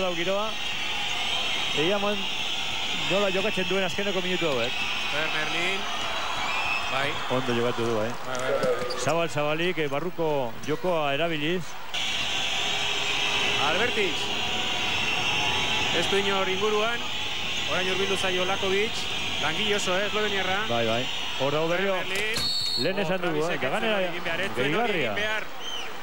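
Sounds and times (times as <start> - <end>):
arena crowd noise: 0.0 - 26.0
commentator speaking: 13.6 - 14.5, 15.8 - 25.5.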